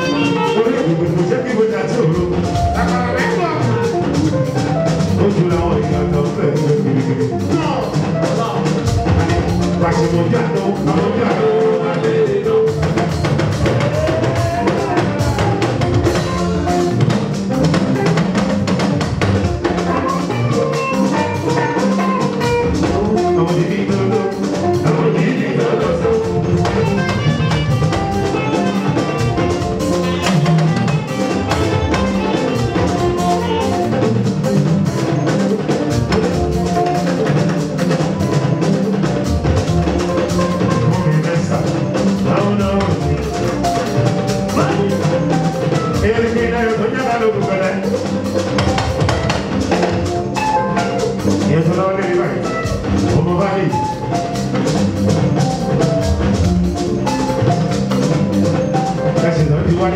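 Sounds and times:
singer on microphone: 0:00.0 - 0:03.9, 0:09.2 - 0:16.6, 0:22.7 - 0:27.4
drum beat: 0:00.0 - 0:59.9
guitar: 0:00.0 - 0:59.9
live band music: 0:00.0 - 0:59.9.

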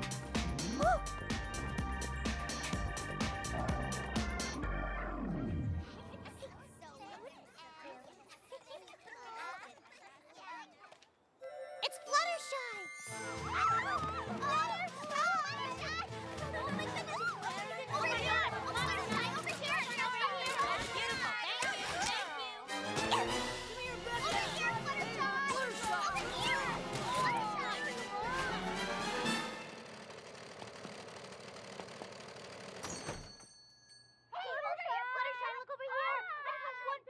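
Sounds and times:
background music with low notes: 0:00.0 - 0:06.6
faint high ringing tone: 0:11.4 - 0:13.1
girls squealing and cooing: 0:12.1 - 0:21.8
cartoon sewing machine rattle: 0:25.8 - 0:33.5.

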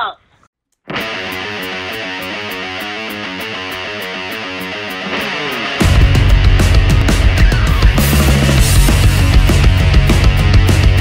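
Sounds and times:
guitar music with steady beat: 0:00.8 - 0:11.0.

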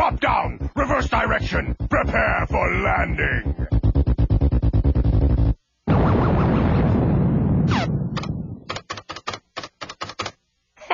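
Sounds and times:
rapid sharp clicks: 0:00.0 - 0:05.6, 0:08.2 - 0:10.4.

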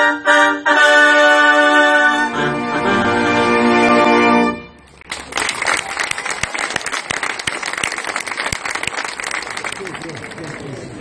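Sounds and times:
audience applauding: 0:04.9 - 0:11.0.

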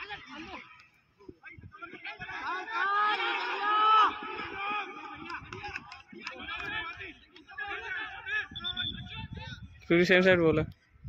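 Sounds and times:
people shouting and calling out: 0:00.0 - 0:10.2.

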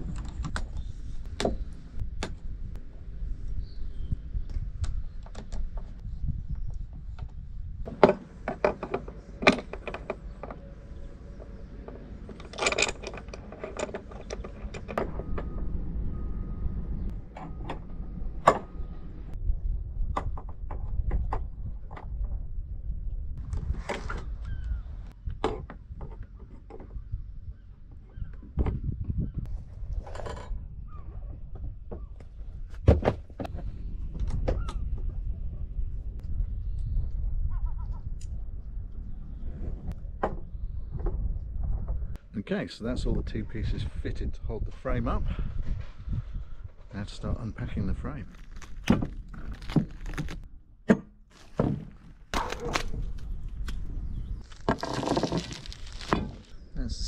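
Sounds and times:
low rumble: 0:14.4 - 0:23.6.

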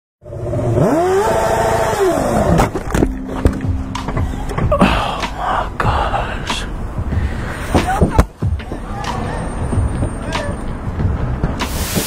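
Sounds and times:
motorcycle engine revving: 0:00.2 - 0:04.2.

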